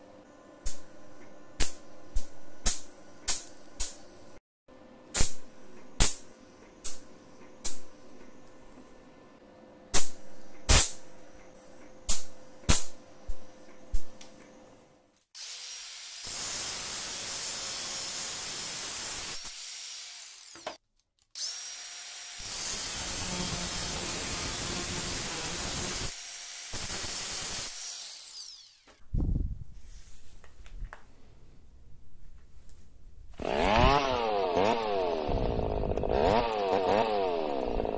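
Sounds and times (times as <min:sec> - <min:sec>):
handheld power tool running: 0:15.4 - 0:20.8, 0:21.4 - 0:29.0, 0:33.4 - 0:37.9
welder crackling: 0:22.4 - 0:29.0.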